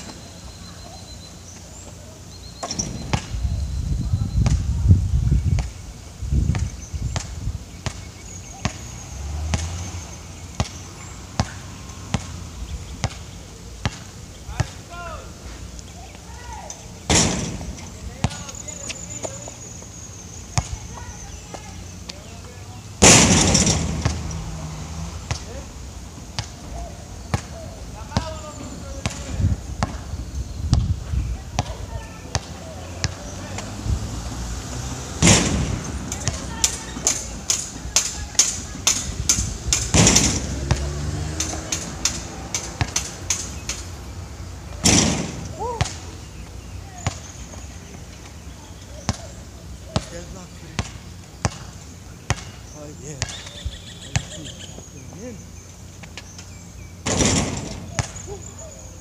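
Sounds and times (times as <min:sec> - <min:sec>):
ball striking backboard and rim: 0:02.6 - 0:03.3, 0:17.1 - 0:18.5, 0:23.0 - 0:24.4, 0:25.3 - 0:25.5, 0:29.0 - 0:30.0, 0:35.2 - 0:43.8, 0:44.8 - 0:46.1, 0:50.8 - 0:51.7, 0:52.3 - 0:52.6, 0:57.0 - 0:58.2
basketball bouncing on hard court: 0:29.0 - 0:30.0, 0:50.8 - 0:51.7, 0:52.3 - 0:52.6.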